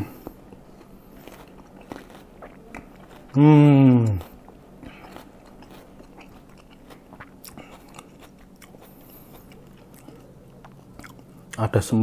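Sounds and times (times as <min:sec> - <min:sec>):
man chewing with mouth clicks: 0:00.0 - 0:11.7.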